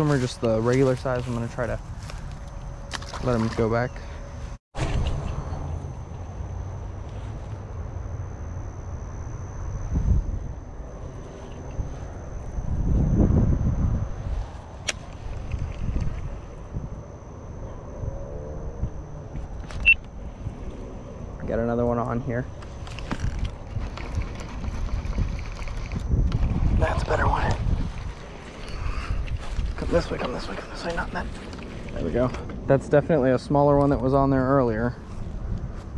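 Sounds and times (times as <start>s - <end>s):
wind rumble on microphone: 4.3s - 35.9s.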